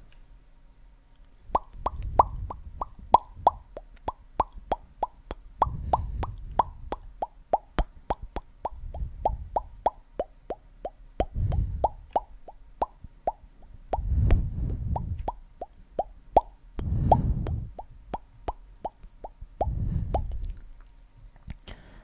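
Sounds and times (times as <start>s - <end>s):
soft low rumble: 1.4s - 21.6s
mouth pops: 1.5s - 21.8s.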